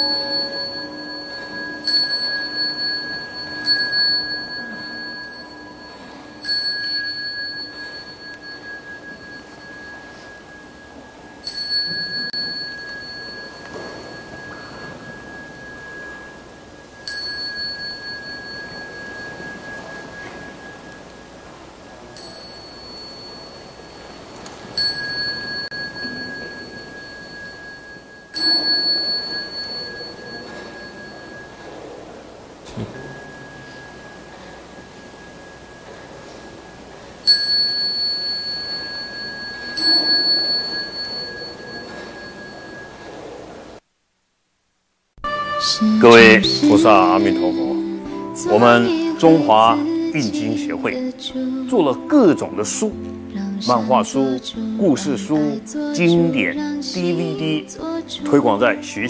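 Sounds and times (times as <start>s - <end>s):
deep ringing tone: 0.0s - 43.8s, 45.2s - 55.2s
small bowl bell ringing: 0.0s - 43.8s.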